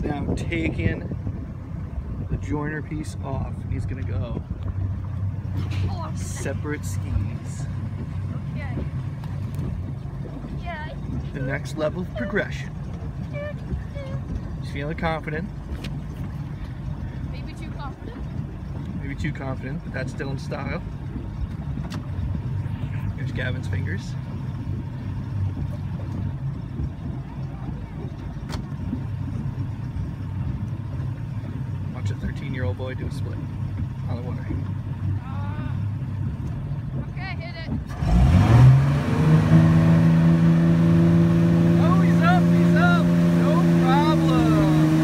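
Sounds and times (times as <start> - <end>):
motorboat engine idling: 0.0 - 45.0.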